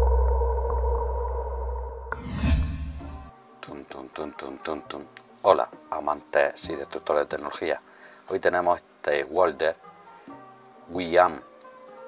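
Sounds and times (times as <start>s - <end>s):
deep synthesized drone: 0.0s - 3.3s
whoosh: 2.0s - 3.3s.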